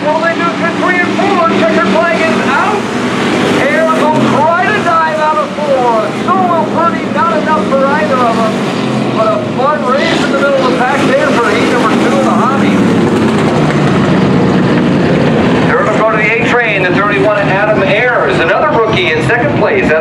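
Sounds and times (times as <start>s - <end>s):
race car engines at speed: 0.0s - 20.0s.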